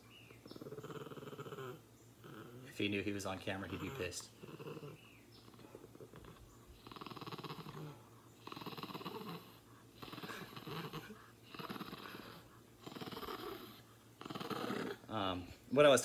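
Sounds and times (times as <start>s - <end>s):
small dog growling: 0.3s - 15.6s.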